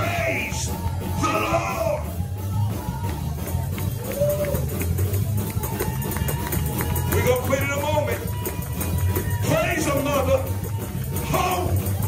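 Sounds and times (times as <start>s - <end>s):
fast driving drumbeat: 0.0s - 12.0s
heavy steady bass: 0.0s - 12.0s.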